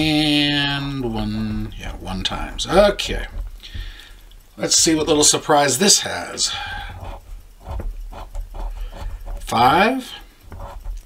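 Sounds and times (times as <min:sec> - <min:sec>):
coin scratching lottery ticket: 0:06.8 - 0:11.0.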